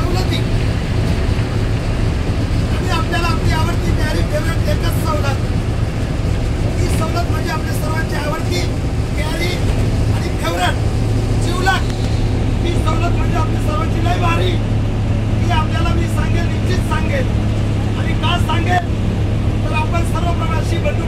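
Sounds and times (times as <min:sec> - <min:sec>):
man speaking loudly: 0:00.0 - 0:00.5, 0:02.7 - 0:05.5, 0:06.7 - 0:14.7, 0:15.3 - 0:18.9, 0:19.6 - 0:21.0
bus engine drone: 0:00.0 - 0:21.0.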